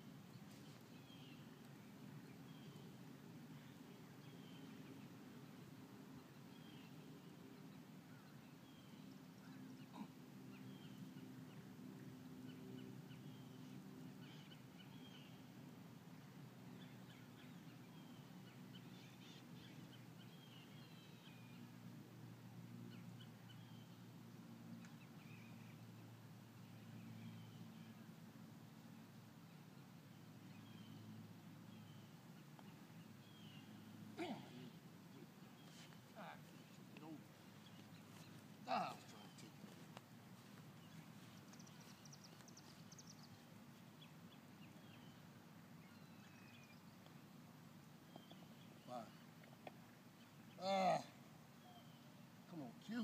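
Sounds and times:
low steady hum: 0.0s - 53.0s
birds chirping: 0.3s - 21.8s, 22.9s - 53.0s.

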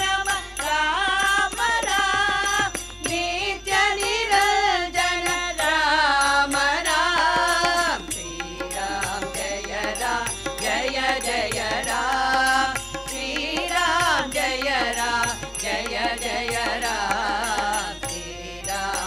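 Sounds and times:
harmonium: 0.0s - 19.0s
women's chorus singing: 0.0s - 19.0s.

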